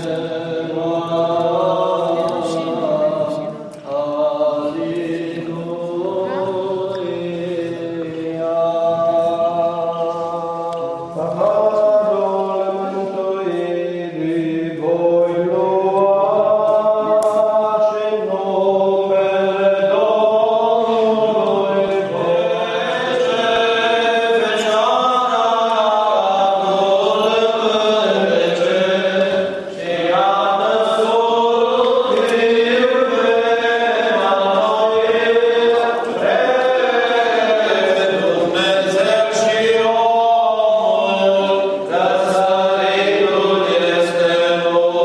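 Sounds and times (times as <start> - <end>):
liturgical chant: 0.0 - 45.0.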